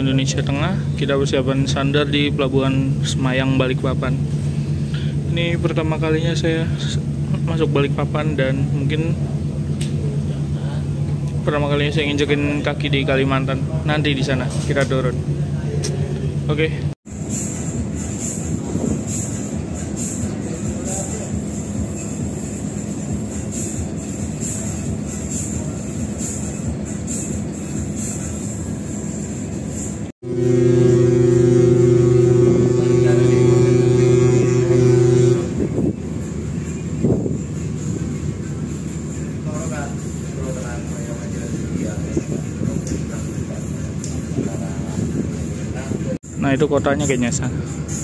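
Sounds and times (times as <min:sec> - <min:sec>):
ship deck rumble: 0:00.0 - 0:46.2
deep ship's horn blast: 0:30.2 - 0:36.4.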